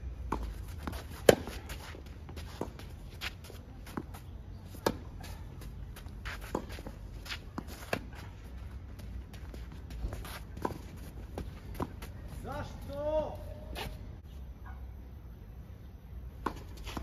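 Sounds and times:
racket hitting tennis ball: 0:00.3 - 0:12.1
footsteps sliding on clay: 0:00.4 - 0:13.0.

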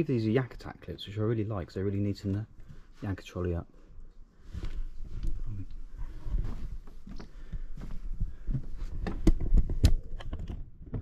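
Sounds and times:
footsteps on wooden decking: 0:04.4 - 0:09.8
camera handling knocks and rubbing: 0:08.9 - 0:11.0.

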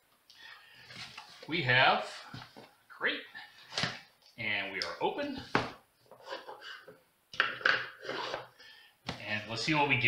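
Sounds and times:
wooden box scraping on table: 0:07.8 - 0:08.5.

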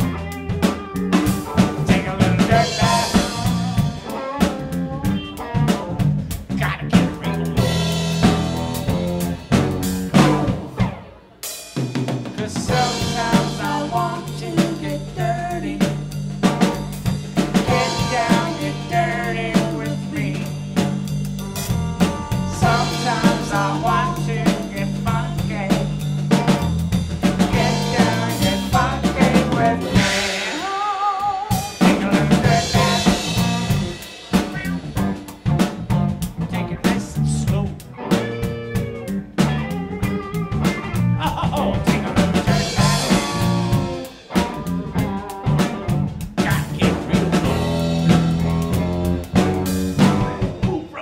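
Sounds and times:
electric bass line: 0:00.0 - 0:11.3, 0:12.4 - 0:50.9
electric guitar: 0:00.0 - 0:11.6, 0:12.2 - 0:51.0
drum kit hits: 0:00.0 - 0:51.0
funk band playing: 0:00.0 - 0:51.0.

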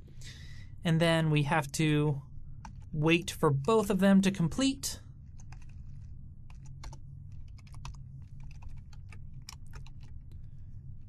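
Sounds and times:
steady low hum: 0:00.0 - 0:11.0
typing on computer keyboard: 0:05.4 - 0:10.2.

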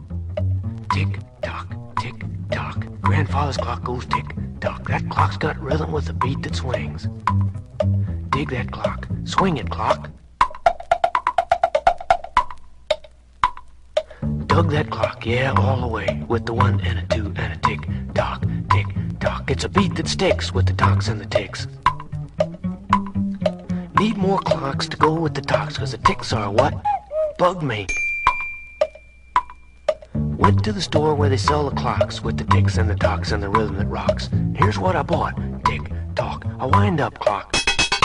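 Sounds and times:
wood block tick-tock clicks: 0:00.3 - 0:26.9, 0:28.0 - 0:38.0
high bell-like ding: 0:27.9 - 0:29.8.

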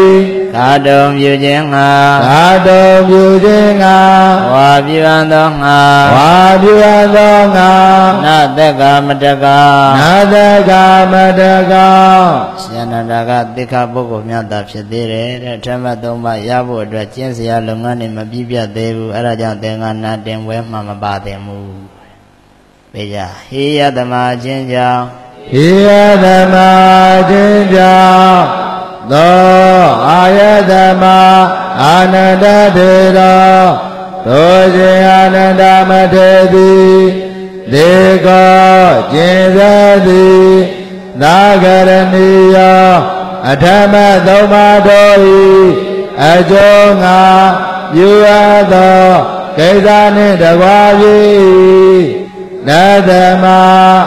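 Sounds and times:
man chanting melodic recitation: 0:00.0 - 0:54.0
breaths between phrases: 0:37.2 - 0:37.6.

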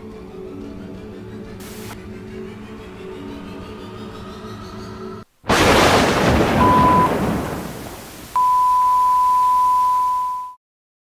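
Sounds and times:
loud burst of noise: 0:05.5 - 0:08.4
brief beep: 0:06.6 - 0:07.2, 0:08.4 - 0:10.6
high electronic beep tone: 0:06.6 - 0:07.2, 0:08.3 - 0:10.6.

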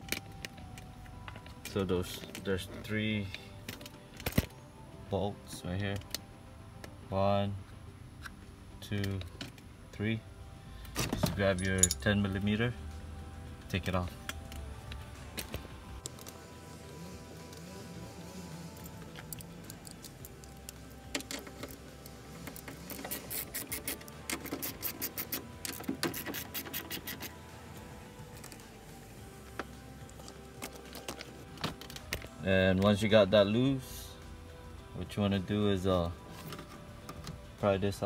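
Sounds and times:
faint background music: 0:00.0 - 0:38.0
ratchet wrench clicking: 0:22.4 - 0:27.4.

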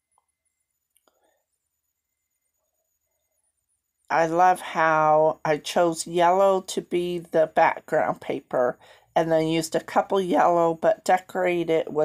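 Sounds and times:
faint light ticks: 0:00.9 - 0:01.3.

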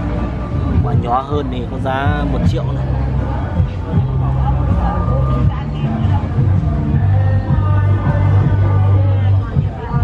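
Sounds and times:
background music with bass line: 0:00.0 - 0:10.0.

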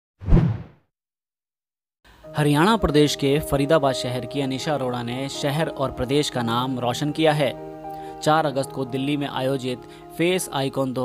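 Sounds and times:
whoosh sound effect: 0:00.2 - 0:00.8.

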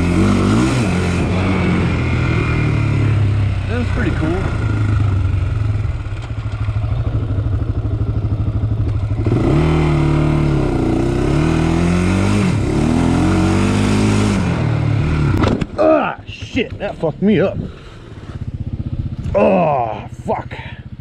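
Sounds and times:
quad engine revving: 0:00.0 - 0:08.1, 0:08.8 - 0:16.0.

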